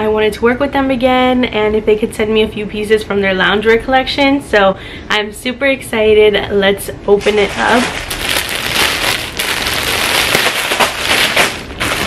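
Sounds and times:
plastic bag crinkling and rustling: 0:07.1 - 0:12.0.

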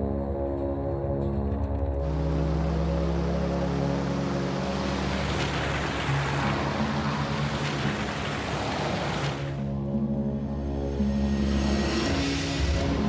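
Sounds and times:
background music with low notes: 0:00.0 - 0:13.0
cars driving past: 0:02.0 - 0:09.7.

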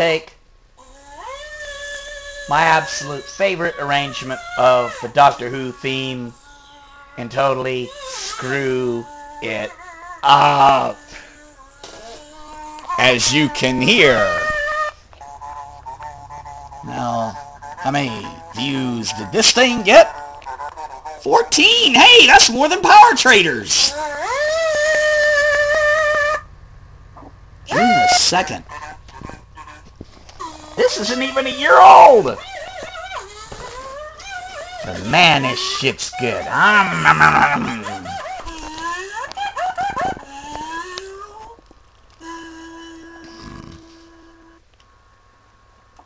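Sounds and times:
faint room noise: 0:00.0 - 0:46.0
person humming: 0:42.2 - 0:44.7.

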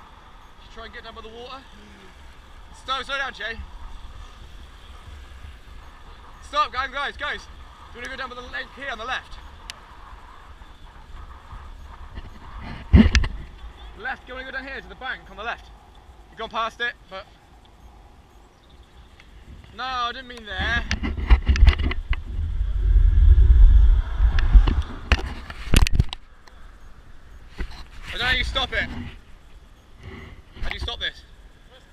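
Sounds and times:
bicycle tyres rolling on tarmac: 0:00.0 - 0:31.9
wind on microphone: 0:01.2 - 0:16.4, 0:20.5 - 0:31.0.

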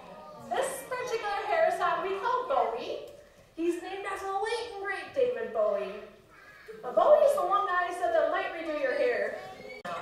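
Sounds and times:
woman speaking: 0:00.5 - 0:06.2, 0:06.8 - 0:09.4.

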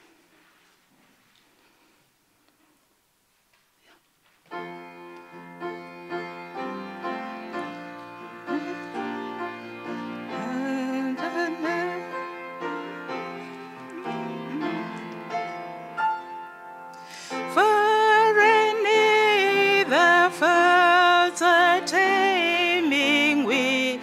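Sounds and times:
keyboard playing hymn chords: 0:04.6 - 0:24.0
voices singing along: 0:10.3 - 0:15.4, 0:17.5 - 0:24.0.

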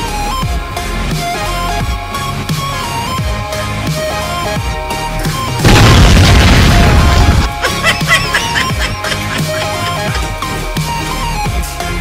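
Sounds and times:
grenade explosion boom: 0:05.6 - 0:07.5
electronic music: 0:06.7 - 0:12.0.

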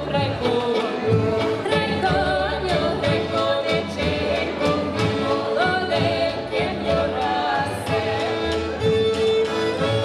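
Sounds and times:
women singing in harmony: 0:00.0 - 0:08.9
accordion: 0:00.0 - 0:10.0
violin: 0:00.0 - 0:10.0.

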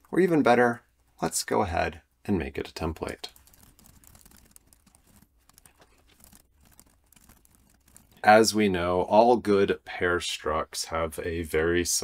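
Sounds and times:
keyboard typing: 0:03.0 - 0:08.2.

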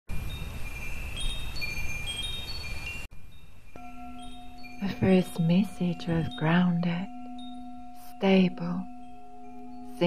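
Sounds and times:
wind chimes ringing: 0:00.1 - 0:10.0
steady low tone: 0:03.2 - 0:10.0.

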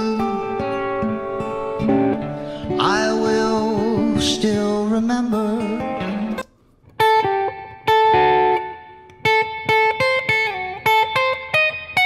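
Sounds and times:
person singing: 0:00.0 - 0:06.4
acoustic guitar strumming: 0:00.0 - 0:12.0.

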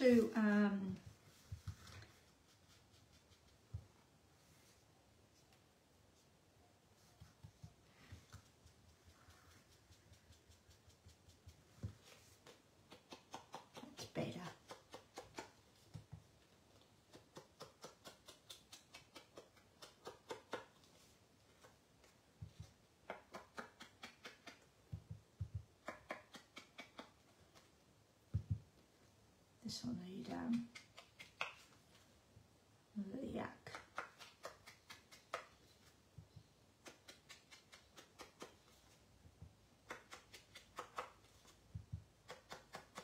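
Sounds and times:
sponge dauber tapping: 0:17.0 - 0:27.7, 0:28.3 - 0:28.8.

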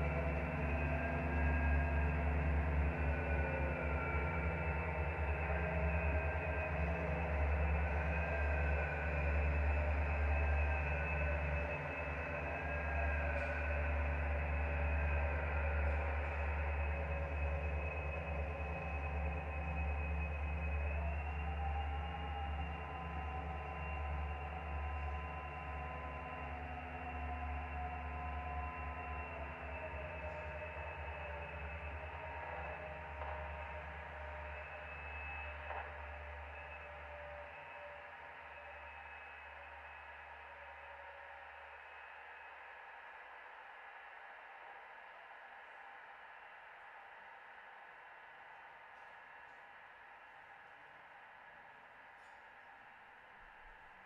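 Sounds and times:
deep bass drone: 0:00.0 - 0:37.8
synthesizer drones gliding: 0:00.0 - 0:43.0.

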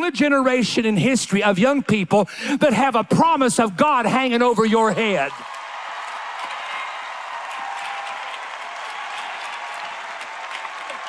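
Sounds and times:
congregation applauding: 0:04.9 - 0:11.0.

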